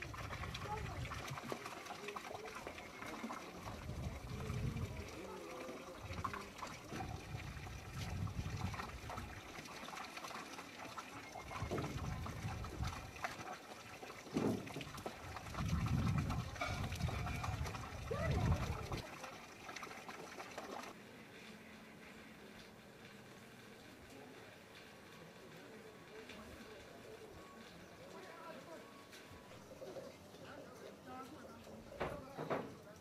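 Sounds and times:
faint indistinct voices: 0.0 - 33.0.

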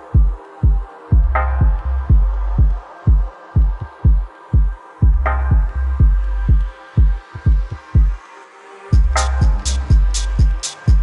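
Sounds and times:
steady kick drum: 0.1 - 8.2, 8.9 - 11.0
deep sustained bass notes: 1.1 - 2.8, 5.0 - 7.2, 9.0 - 11.0.

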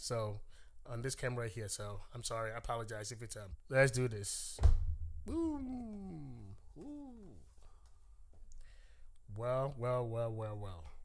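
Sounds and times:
man exclaiming woo: 5.3 - 7.5.

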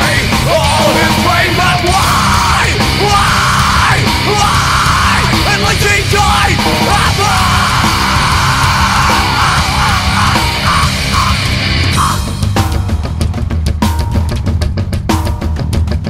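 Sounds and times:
metal song with yelled vocals: 0.0 - 13.7.

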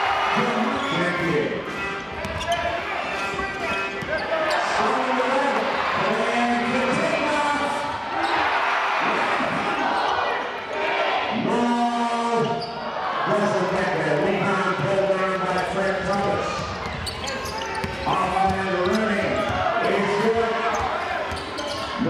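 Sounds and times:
crowd noise and voices: 0.0 - 22.0
basketball bouncing on court: 2.1 - 2.6, 16.2 - 19.7, 20.7 - 22.0.

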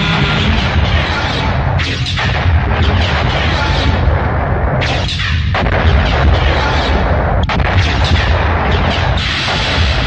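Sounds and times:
cinematic low rumble and booms: 0.0 - 10.0.

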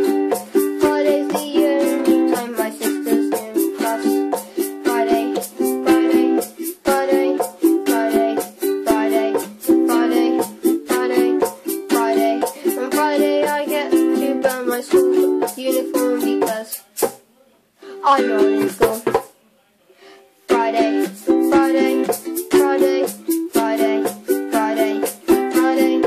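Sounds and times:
ukulele strumming chords: 0.0 - 17.2, 17.8 - 19.4, 20.5 - 26.0.

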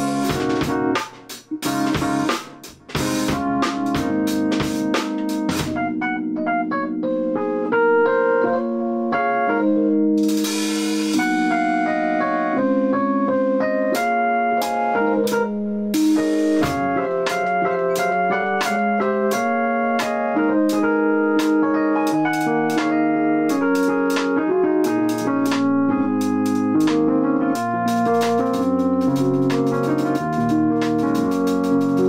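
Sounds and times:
drum kit playing: 0.0 - 6.3, 10.2 - 11.9, 13.9 - 32.0
electronic keyboard chords and melody: 0.0 - 32.0.

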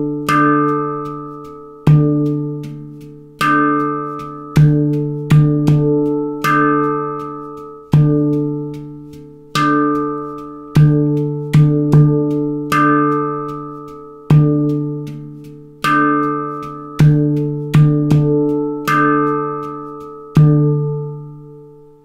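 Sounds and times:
handpan notes ringing: 0.0 - 22.0.

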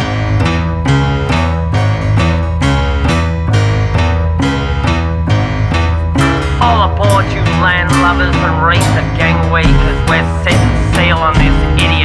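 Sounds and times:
heavy bass line: 0.0 - 12.0
rock guitar chords: 0.0 - 12.0.

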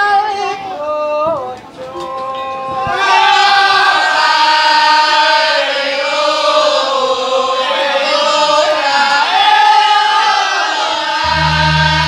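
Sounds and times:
women singing through pa: 0.0 - 12.0.

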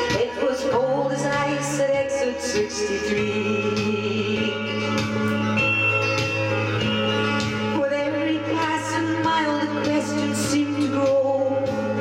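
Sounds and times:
country music backing track: 0.0 - 12.0
guitar: 0.0 - 12.0.

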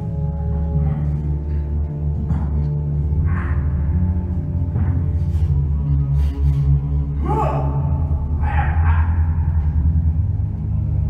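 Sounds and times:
low orchestral drone: 0.0 - 11.0.

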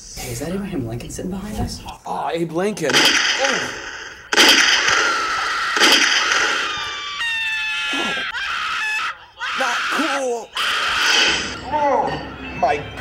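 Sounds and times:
sharp loud burst of noise: 2.9 - 7.2
person screaming: 4.9 - 11.5.

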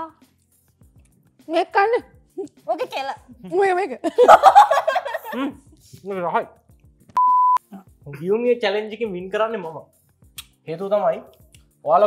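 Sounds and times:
electronic bleep: 7.2 - 7.6.

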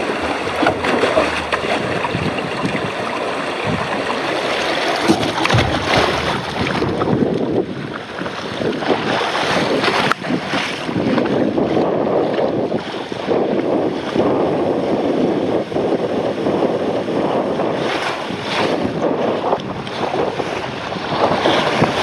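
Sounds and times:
water rushing and splashing: 0.0 - 22.0.

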